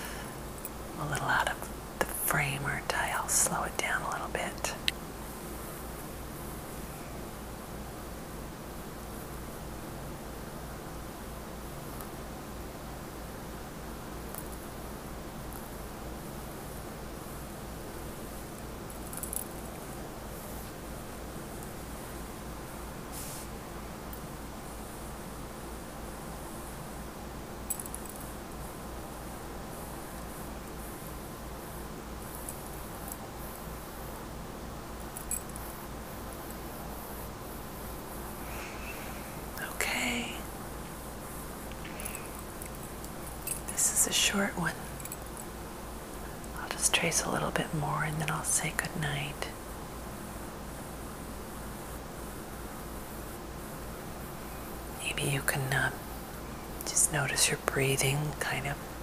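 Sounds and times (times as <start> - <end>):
background hiss and low hum: 0.0 - 59.0.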